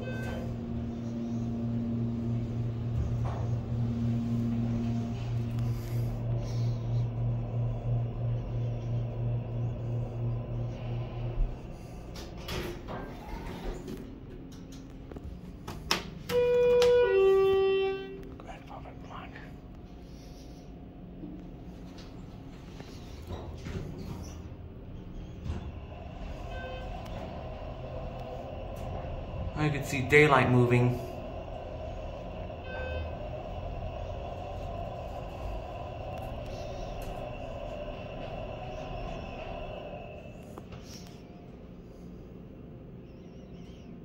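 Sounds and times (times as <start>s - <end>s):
sliding elevator doors opening: 0.0s - 18.2s, 21.6s - 41.4s
elevator humming: 0.0s - 44.0s.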